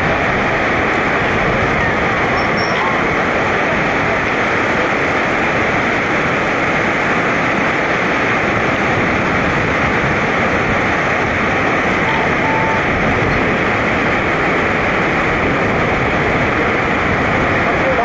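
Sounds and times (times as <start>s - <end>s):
whitewater river rushing: 0.0s - 18.0s.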